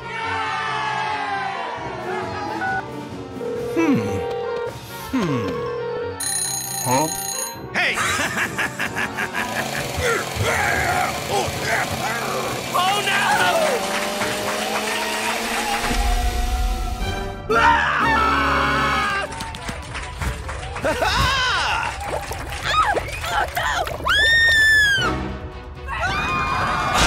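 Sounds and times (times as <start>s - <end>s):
music: 0.0s - 14.6s, 15.4s - 27.0s.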